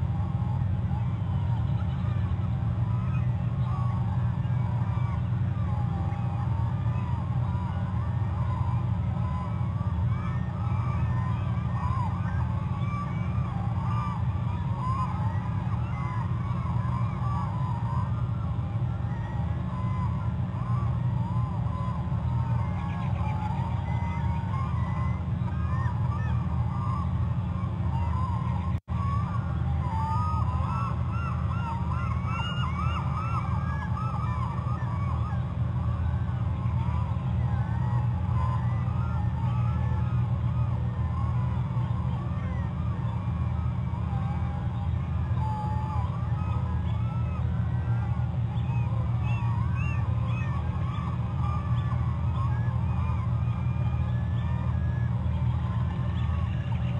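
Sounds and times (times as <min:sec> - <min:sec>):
chorus of animal calls: 0:00.0 - 0:56.9
steady low hum: 0:00.0 - 0:56.9.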